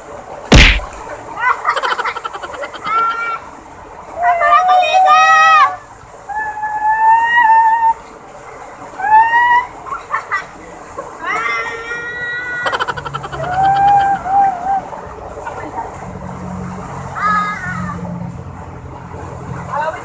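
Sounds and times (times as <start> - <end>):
people splashing: 0.5 - 1.2
people shrieking and yelling: 11.3 - 14.9.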